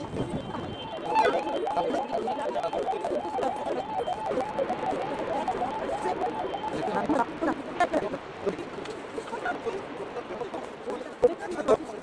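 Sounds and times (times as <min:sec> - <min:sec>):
sped-up high-pitched chatter: 0:00.0 - 0:08.2.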